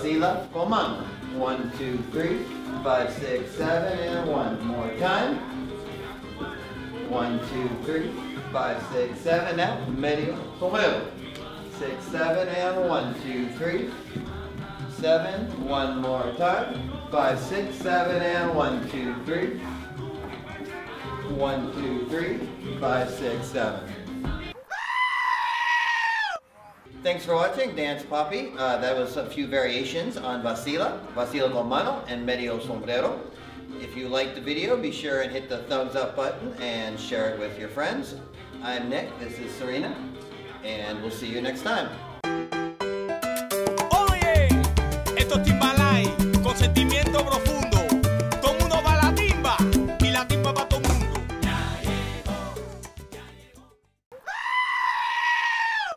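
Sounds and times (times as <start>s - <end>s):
salsa music: 0.0s - 24.6s, 26.9s - 54.0s
goat screaming: 24.6s - 26.7s, 54.1s - 55.9s
sheep bleating: 24.6s - 26.8s, 54.1s - 55.9s.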